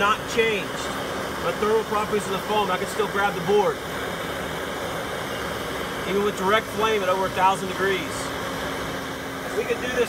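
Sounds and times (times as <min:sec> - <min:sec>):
blowtorch flame hissing: 0:00.0 - 0:10.0.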